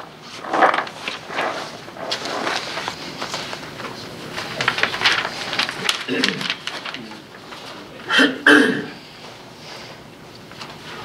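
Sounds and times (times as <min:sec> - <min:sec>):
paper rustling: 0:00.0 - 0:08.0.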